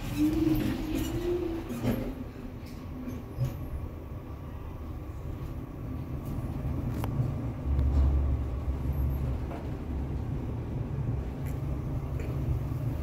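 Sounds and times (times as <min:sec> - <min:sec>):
elevator rumble: 0:00.0 - 0:13.0.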